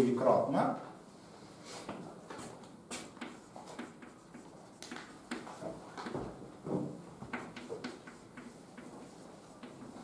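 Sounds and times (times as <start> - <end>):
chalk scratching and tapping: 1.8 - 6.4, 7.2 - 10.0.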